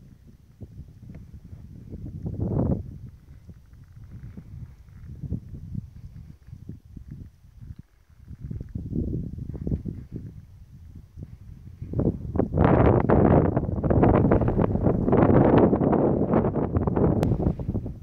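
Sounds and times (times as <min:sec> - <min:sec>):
wind buffeting the microphone: 0:00.0 - 0:18.0.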